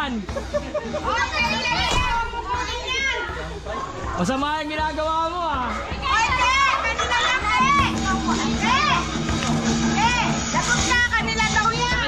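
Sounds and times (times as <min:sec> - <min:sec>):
group shouting and laughing: 0:00.3 - 0:04.0, 0:05.7 - 0:10.9.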